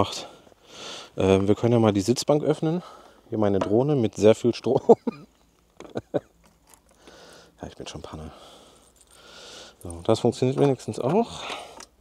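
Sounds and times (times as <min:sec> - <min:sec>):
light clicks and taps of keys: 0:08.7 - 0:12.0.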